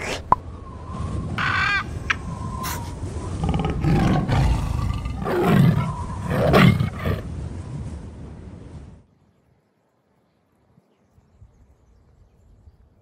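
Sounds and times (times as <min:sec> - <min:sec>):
tiger roars: 0:03.4 - 0:07.2.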